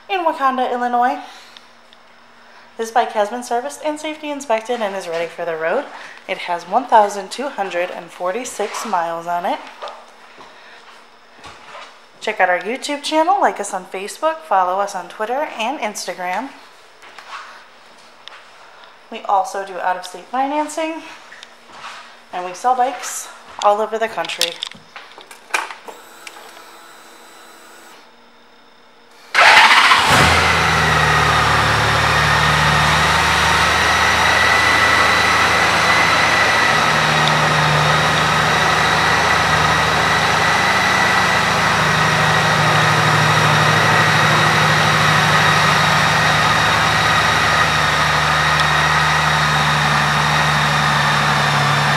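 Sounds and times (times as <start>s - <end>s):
motorcycle engine starting and idling: 29.3s - 51.9s
high whine: 30.1s - 51.9s.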